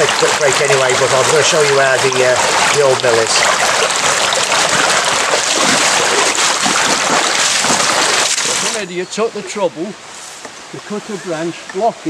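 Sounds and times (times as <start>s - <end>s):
shallow river running over stones: 0.0s - 11.9s.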